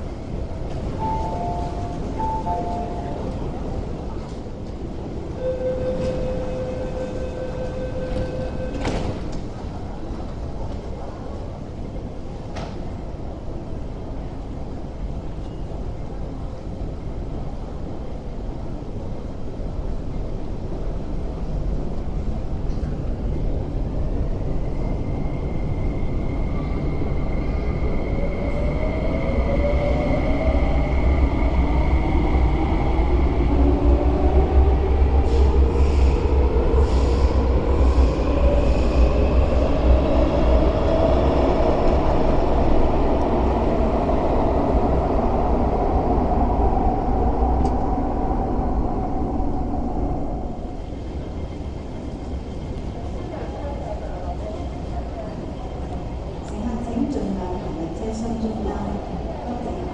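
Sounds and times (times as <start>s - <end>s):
train rumble: 0.0s - 59.9s
steady high tone: 1.0s - 3.8s.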